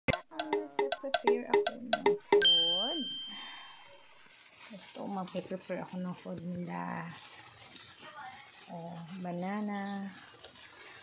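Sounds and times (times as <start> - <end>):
bright metallic ding: 2.3 - 4.0.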